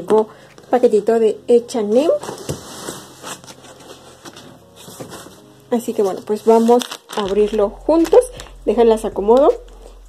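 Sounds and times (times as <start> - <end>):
cardboard scraping and rustling: 1.9 - 7.4.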